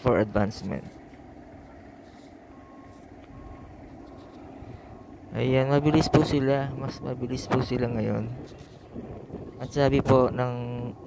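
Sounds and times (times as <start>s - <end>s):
construction machinery rumble: 0.0s - 11.0s
electronic warning beeps: 1.7s - 9.8s.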